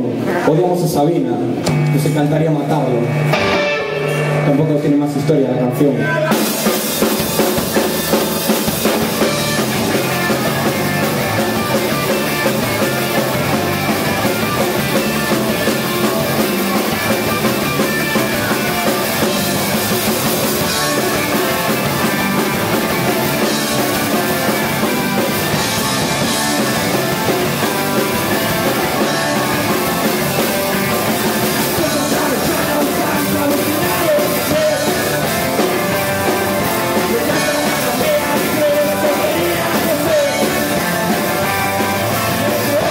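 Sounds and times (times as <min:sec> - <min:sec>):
bass guitar: 0:00.0 - 0:42.9
electric guitar: 0:00.0 - 0:42.9
drum kit: 0:01.5 - 0:42.9
person singing: 0:31.4 - 0:42.9.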